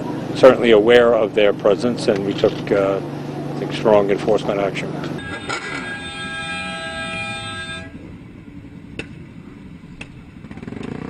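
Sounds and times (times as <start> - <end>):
engines idling: 0.0 - 11.0
vehicle horn blast: 5.2 - 8.1.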